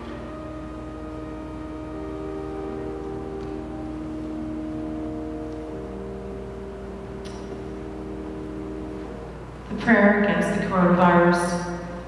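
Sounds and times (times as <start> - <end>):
slow church organ chords: 0.0 - 12.0.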